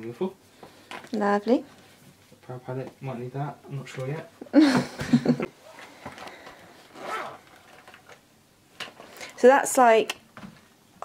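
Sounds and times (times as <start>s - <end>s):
zipper sliding: 6.8s - 7.8s.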